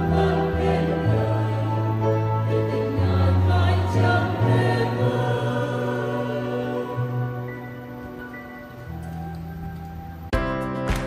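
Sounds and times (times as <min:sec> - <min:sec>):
mixed choir singing a hymn: 0:00.0 - 0:08.5.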